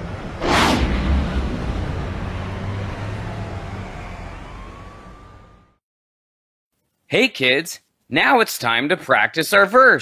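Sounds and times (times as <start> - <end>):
rumbling traffic: 0.0 - 5.8
faint siren: 1.0 - 5.8.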